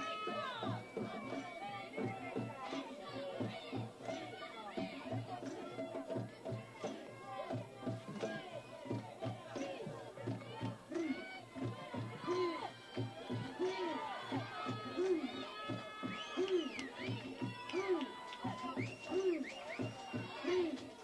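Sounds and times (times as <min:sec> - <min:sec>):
crowd chanting and shouting: 0:00.0 - 0:21.0
music: 0:00.0 - 0:21.0.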